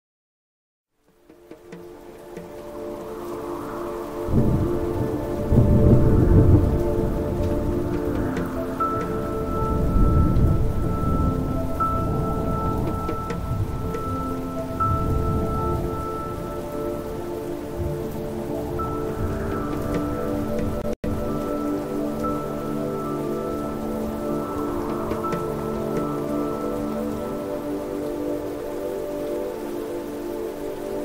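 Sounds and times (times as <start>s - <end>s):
rain: 0.9s - 31.0s
slow ambient music: 1.0s - 31.0s
thunder rumbles: 1.7s - 28.2s.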